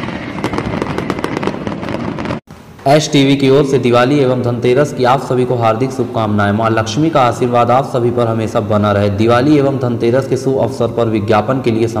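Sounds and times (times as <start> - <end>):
fireworks crackling: 0.0 - 4.0.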